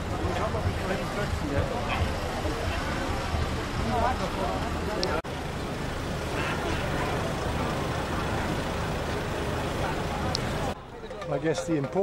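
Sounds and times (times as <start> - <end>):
crowd chattering: 0.0 - 12.0
vehicles idling and moving: 0.0 - 12.0.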